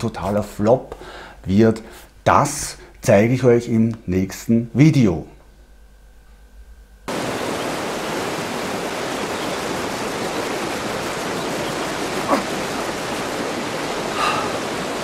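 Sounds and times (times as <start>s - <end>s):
river rushing over stones: 7.1s - 15.0s.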